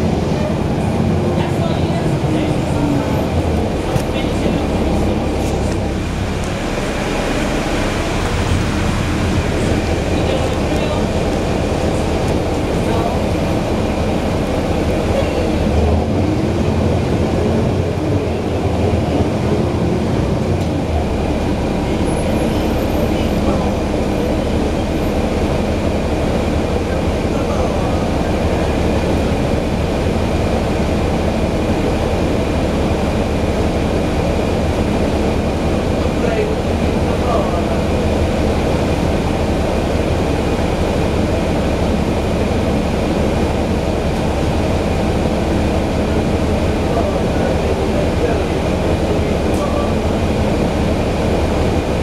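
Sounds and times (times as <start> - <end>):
bus diesel engine rumbling: 0.0 - 52.0.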